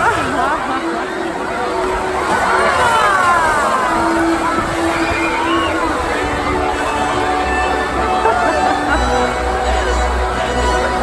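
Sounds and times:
water splashing: 0.0s - 11.0s
crowd cheering and screaming: 1.4s - 11.0s.

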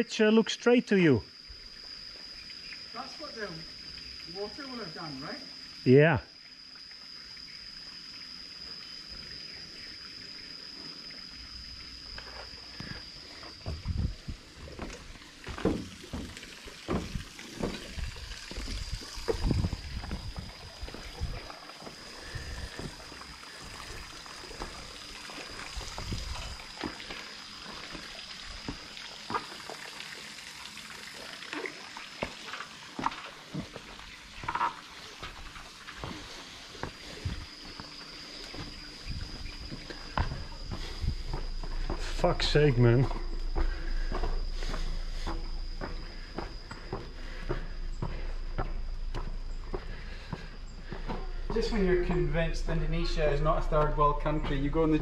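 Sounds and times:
steady high whine: 0.0s - 55.0s
footsteps on steel footbridge: 13.6s - 21.5s, 36.0s - 52.3s.

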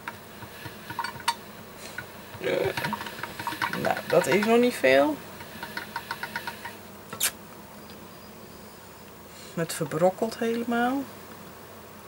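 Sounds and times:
pasta machine rollers clicking: 0.0s - 6.8s.

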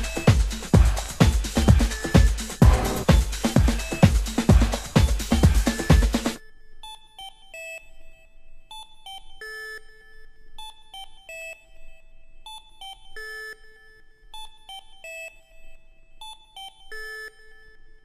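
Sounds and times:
beeping synthesizer melody: 1.6s - 3.5s.

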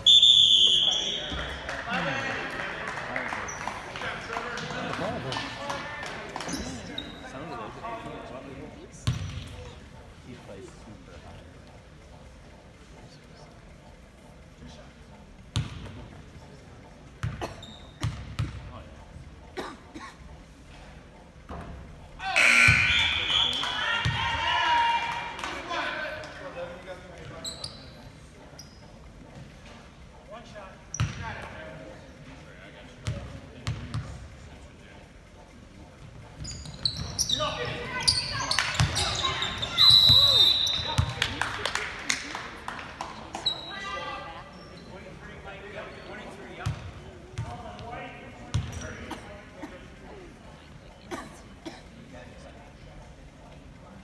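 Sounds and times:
referee's whistle blast: 0.0s - 1.4s, 22.3s - 23.8s, 39.6s - 41.0s
crowd and player voices: 0.0s - 54.0s
basketball bouncing on court: 9.0s - 9.7s, 15.5s - 16.0s, 17.2s - 18.7s, 30.9s - 31.2s, 33.0s - 34.2s, 46.6s - 47.6s, 48.5s - 48.8s.

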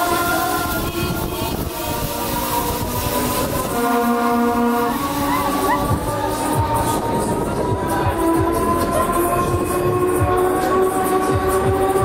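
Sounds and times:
long horn-like chord: 0.0s - 12.0s
loud music over sound system: 0.0s - 12.0s.

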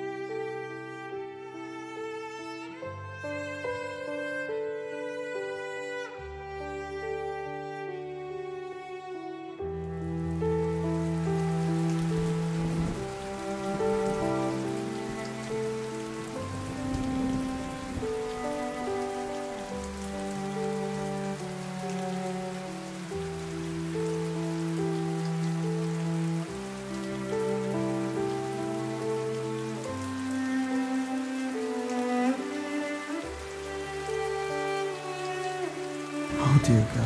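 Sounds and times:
falling rain: 0.0s - 37.0s
slow string chords music: 0.0s - 37.0s.

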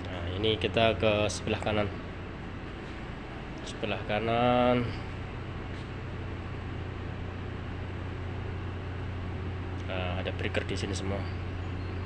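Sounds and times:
low machinery hum: 0.0s - 12.0s.

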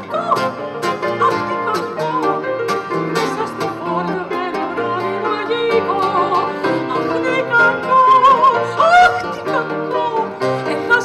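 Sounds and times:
acoustic guitar: 0.0s - 11.0s
woman singing with vibrato: 0.0s - 11.0s.

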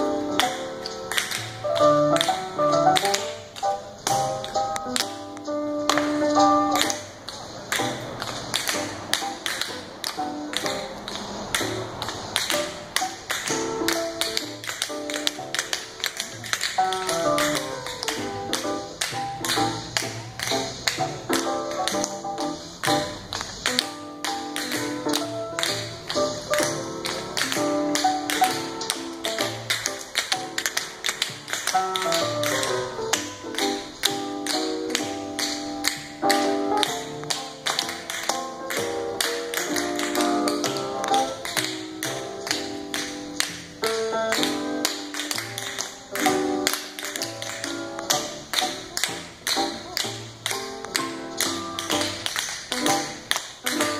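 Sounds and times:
music: 0.0s - 53.9s
tap shoes on concrete: 3.0s - 53.9s.

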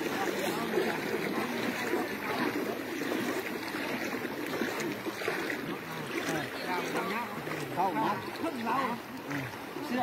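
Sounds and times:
floodwater rushing: 0.0s - 10.0s
people talking: 0.0s - 10.0s.

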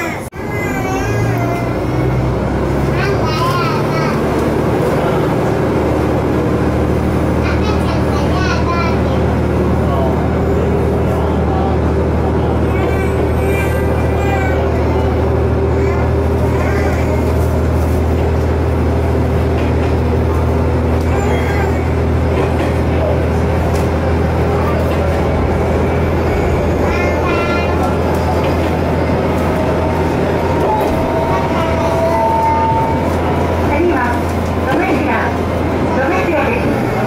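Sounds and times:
diesel railcar engine drone: 0.0s - 37.0s
wheel and rail noise: 0.0s - 37.0s.

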